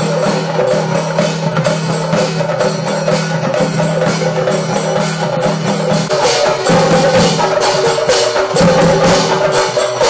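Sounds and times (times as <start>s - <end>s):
metal gong beaten rhythmically: 0.0s - 10.0s.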